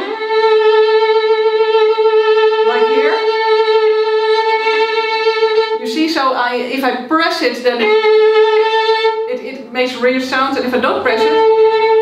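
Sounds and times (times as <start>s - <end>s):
violin long held note: 0.0s - 6.0s, 7.7s - 9.3s, 10.4s - 12.0s
person speaking: 2.7s - 3.3s.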